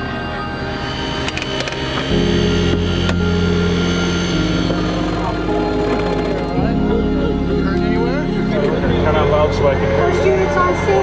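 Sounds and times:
power unit engine running: 0:00.6 - 0:06.8.

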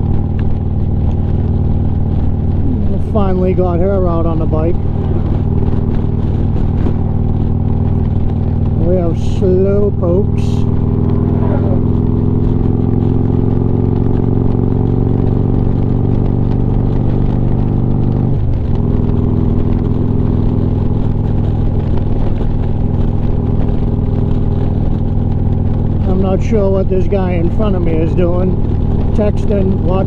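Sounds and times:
motorcycle engine cruising: 0:00.0 - 0:30.0.

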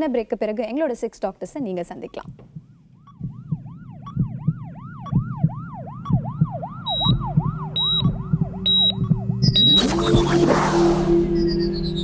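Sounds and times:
pulsing low beat: 0:02.2 - 0:12.0
electronic siren sound effect: 0:03.0 - 0:12.0
music: 0:07.8 - 0:12.0
loud whoosh: 0:08.6 - 0:12.0
short high beeps: 0:08.7 - 0:10.4.

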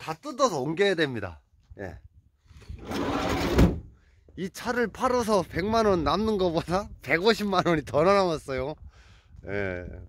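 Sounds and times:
sliding van door rolling: 0:02.8 - 0:03.8
door closing thud: 0:03.1 - 0:03.9.

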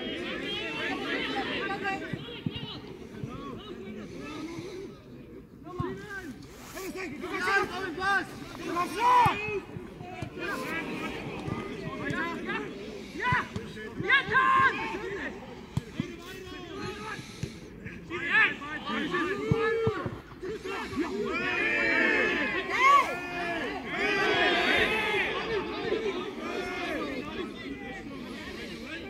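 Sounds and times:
people shouting and calling: 0:00.0 - 0:02.9, 0:06.6 - 0:29.0
people chattering: 0:00.0 - 0:29.0.

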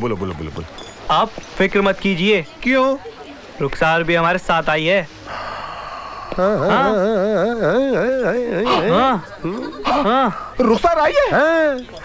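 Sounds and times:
man warbling comic wail: 0:06.4 - 0:09.2.

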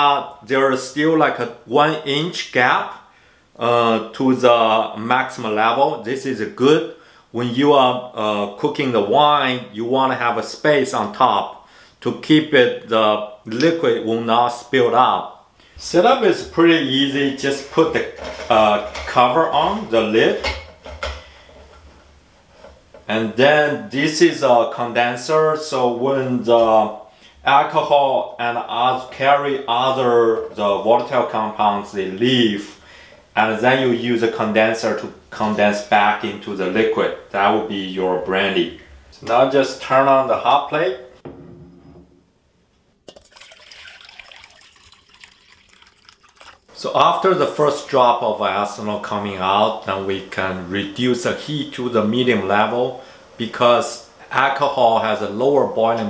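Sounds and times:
water pouring into metal bucket: 0:43.1 - 0:46.7.

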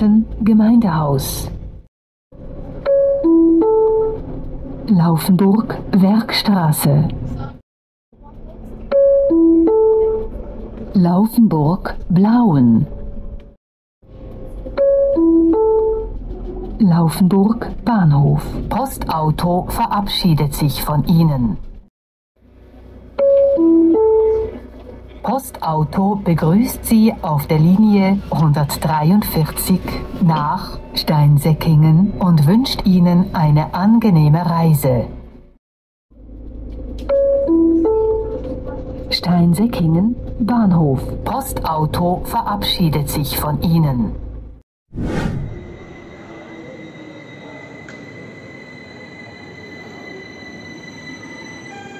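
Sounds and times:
vehicle running noise: 0:36.2 - 0:44.6.

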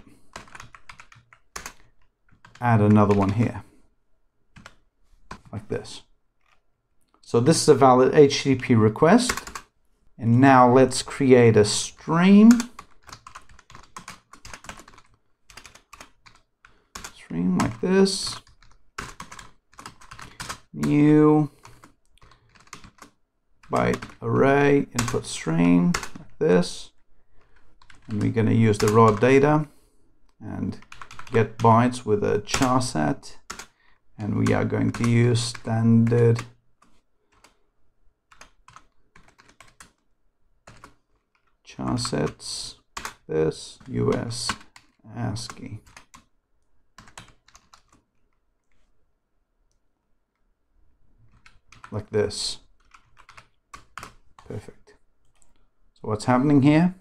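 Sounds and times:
computer keyboard typing: 0:00.0 - 0:03.6, 0:04.5 - 0:05.6, 0:08.6 - 0:09.7, 0:11.7 - 0:26.8, 0:27.4 - 0:29.7, 0:30.7 - 0:37.6, 0:38.3 - 0:40.0, 0:40.6 - 0:46.3, 0:46.9 - 0:48.9, 0:51.2 - 0:54.6.

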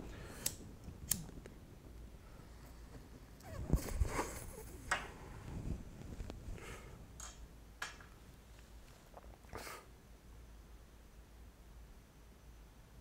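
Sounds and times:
lighter clicks: 0:00.3 - 0:01.4.

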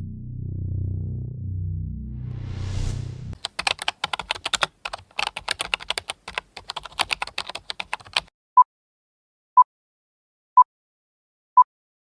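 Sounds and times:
typing on computer keyboard: 0:03.4 - 0:08.3.

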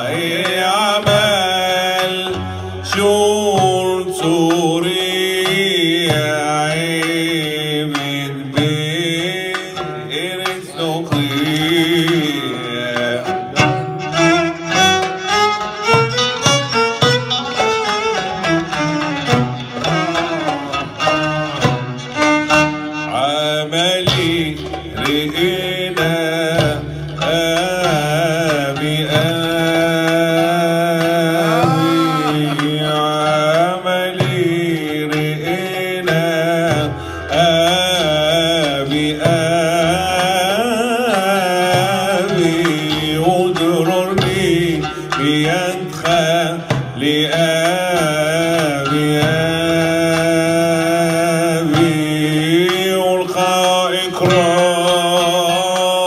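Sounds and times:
man singing melismatic line: 0:00.0 - 0:14.1, 0:23.1 - 0:36.8, 0:37.4 - 0:56.0
oud playing: 0:00.0 - 0:56.0
sharp percussive stroke: 0:24.4 - 0:33.1.

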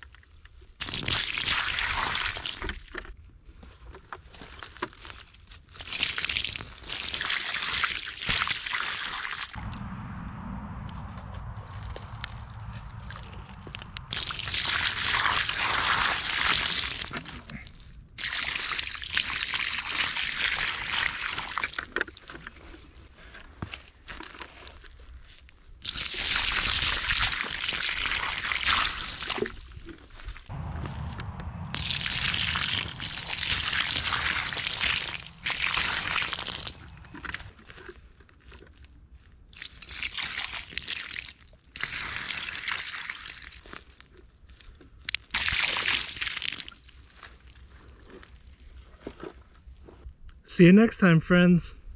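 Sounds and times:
water splashing on plastic and mud: 0:00.5 - 0:03.2, 0:04.9 - 0:09.6, 0:14.0 - 0:22.8, 0:24.1 - 0:30.4, 0:31.8 - 0:37.8, 0:39.5 - 0:44.0, 0:45.1 - 0:49.4.

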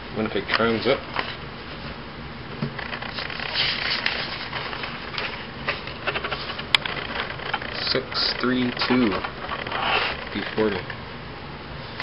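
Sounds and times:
paper rustling and sliding: 0:02.8 - 0:10.9.

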